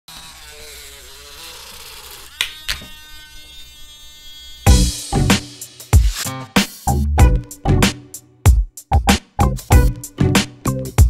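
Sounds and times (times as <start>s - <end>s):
small mixer buzzing: 0.1s - 5.7s.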